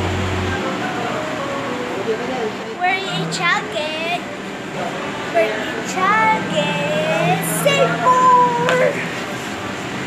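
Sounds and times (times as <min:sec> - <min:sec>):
girl singing: 0:02.8 - 0:04.3, 0:05.3 - 0:09.1.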